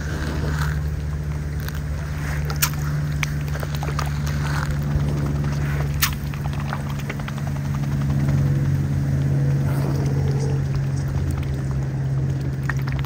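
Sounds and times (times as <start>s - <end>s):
swan bill dabbling and splashing: 0.0s - 8.2s, 9.0s - 13.0s
steady low hum: 0.0s - 13.0s.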